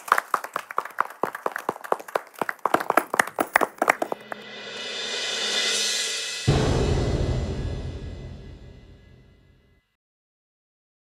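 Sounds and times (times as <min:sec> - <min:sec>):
small audience clapping: 0:00.0 - 0:04.5.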